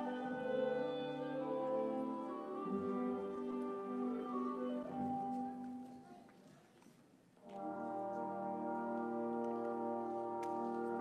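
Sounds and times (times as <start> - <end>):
orchestral ballet music: 0.0 - 6.2, 7.4 - 11.0.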